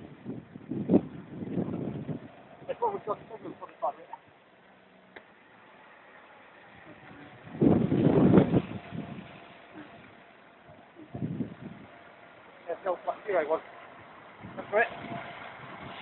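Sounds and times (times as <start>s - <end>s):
diesel bus driving: 0.0s - 16.0s.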